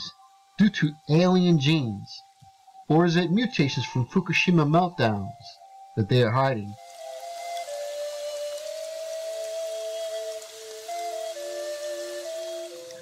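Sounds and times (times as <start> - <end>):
faint steady hiss: 0.0 - 13.0
lower melody line: 0.0 - 13.0
soft slow melody of held notes: 0.0 - 13.0.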